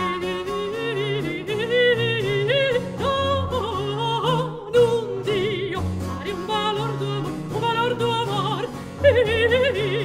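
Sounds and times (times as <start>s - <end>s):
woman singing opera with vibrato: 0.0s - 10.0s.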